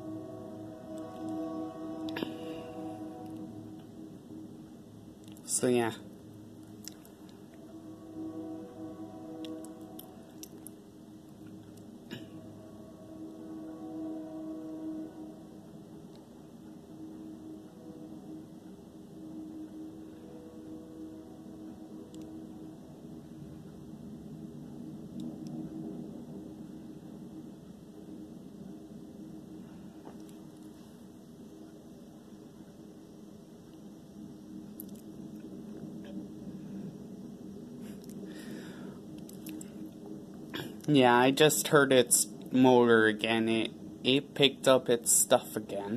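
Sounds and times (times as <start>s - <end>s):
distant freight train rumble: 0.0s - 45.9s.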